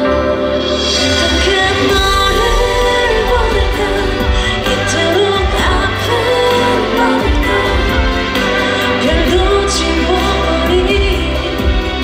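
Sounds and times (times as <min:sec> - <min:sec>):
woman singing pop song: 0:00.0 - 0:12.0.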